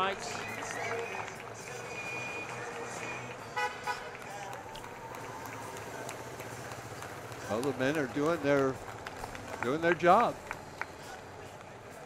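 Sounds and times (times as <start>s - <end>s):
vehicles and motorcycles passing: 0.0s - 12.0s
short horn toot: 3.6s - 4.0s.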